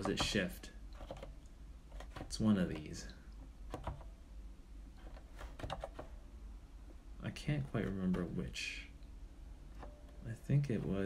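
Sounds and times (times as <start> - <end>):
computer keyboard keystrokes: 1.0 - 1.3, 3.7 - 4.1, 5.0 - 6.1.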